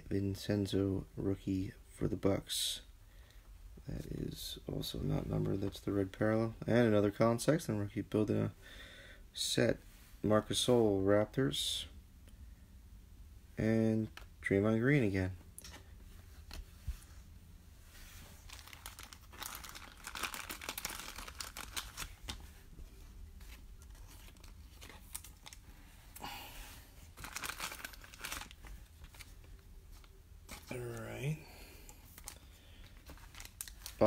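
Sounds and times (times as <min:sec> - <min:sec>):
foil wrapper crinkling: 0:18.4 - 0:22.4, 0:23.5 - 0:25.6, 0:27.1 - 0:30.1, 0:32.1 - 0:34.0
wrapper tearing: 0:18.4 - 0:22.4, 0:23.8 - 0:25.6, 0:27.1 - 0:29.3, 0:33.0 - 0:34.0.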